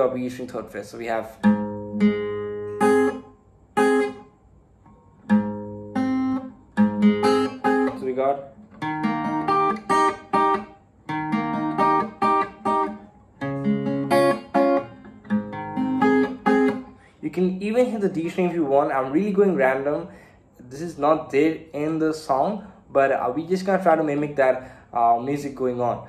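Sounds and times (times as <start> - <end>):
acoustic guitar fingerpicking: 1.3 - 17.2.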